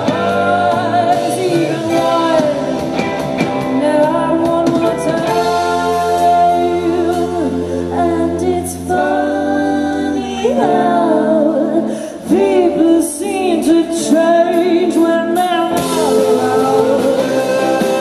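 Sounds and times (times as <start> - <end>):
drums: 0.0 - 18.0
electric guitars: 0.0 - 18.0
woman singing lead: 0.0 - 18.0.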